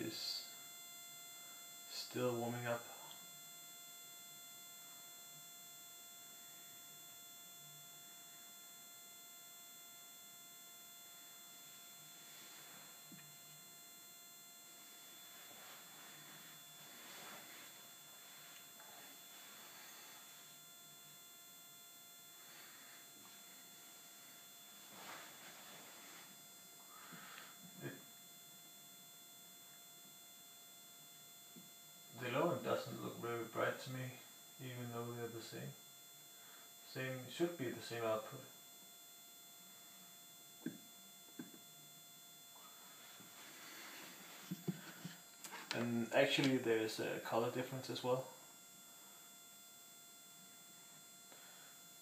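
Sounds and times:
faint electrical hum: 0.0s - 52.0s
soft rustles: 15.2s - 20.4s, 22.4s - 26.4s, 42.8s - 46.6s.

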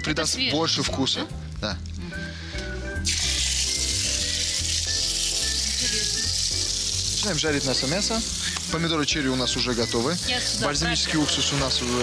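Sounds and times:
meat sizzling in a frying pan: 3.0s - 12.0s.

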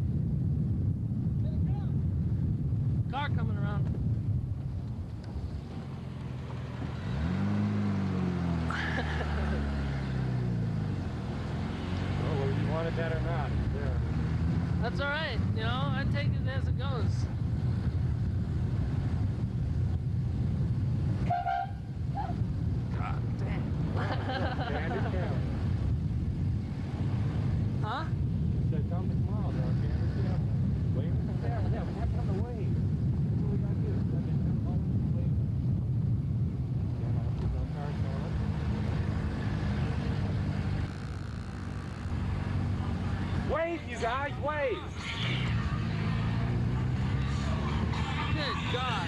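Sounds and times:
car engine and road noise: 0.0s - 49.0s
faint voices: 42.7s - 49.0s.

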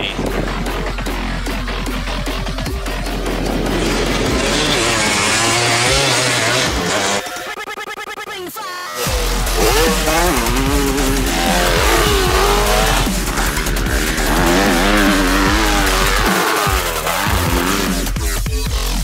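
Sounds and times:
dirt bike engine revving: 0.4s - 7.4s, 9.0s - 19.0s.

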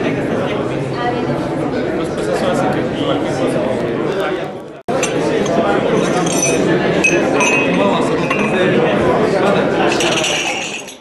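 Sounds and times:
crowd chatter: 0.0s - 11.0s
glasses clinking: 4.9s - 8.9s, 9.8s - 11.0s.

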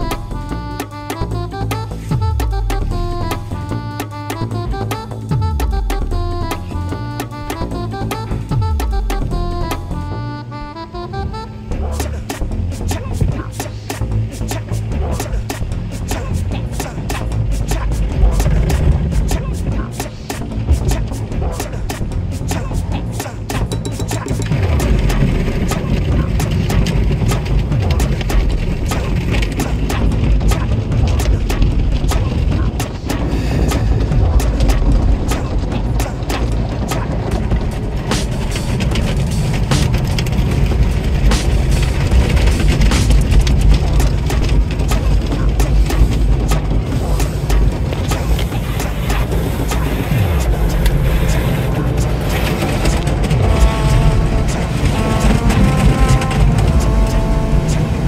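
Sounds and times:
car wash rumble: 0.0s - 58.0s
music: 0.0s - 58.0s
water spraying against car: 24.2s - 58.0s.

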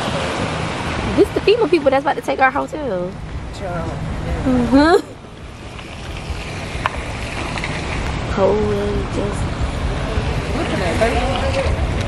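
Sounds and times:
rain downpour: 0.0s - 12.0s
wind rumble on microphone: 0.0s - 12.0s.

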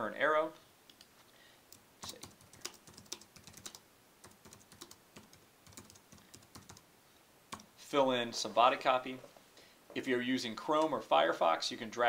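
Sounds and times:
computer keyboard typing: 1.7s - 6.8s.

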